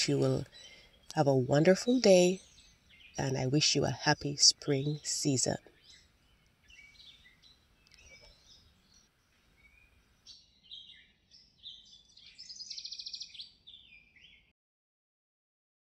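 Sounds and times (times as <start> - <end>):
small birds chirping: 0.0 - 14.5.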